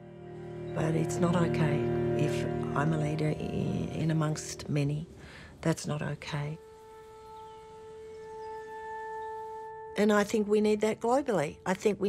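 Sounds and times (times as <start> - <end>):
sustained musical note: 0.0 - 5.3, 6.3 - 12.0.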